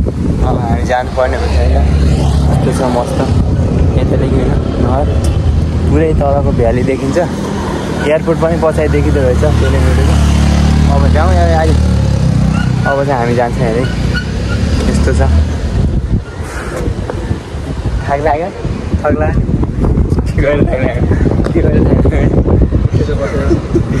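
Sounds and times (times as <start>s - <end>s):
loud low rumble: 0.0s - 7.2s
man talking: 0.4s - 7.4s, 8.0s - 11.9s, 12.8s - 14.0s.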